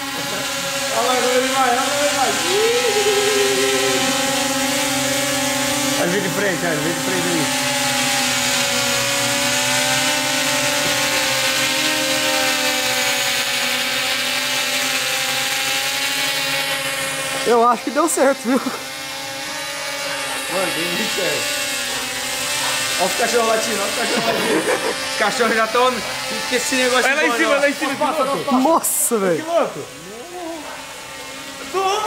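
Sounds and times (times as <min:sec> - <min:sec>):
voices and laughter: 0:00.0 - 0:01.5, 0:02.1 - 0:04.5, 0:18.2 - 0:19.0, 0:23.6 - 0:30.9
drone propellers whining: 0:00.0 - 0:32.0.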